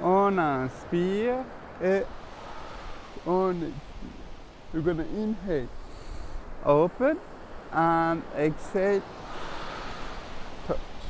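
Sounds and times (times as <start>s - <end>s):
forceful exhale through mouth: 2.3s - 3.2s, 5.8s - 6.4s, 9.2s - 10.6s.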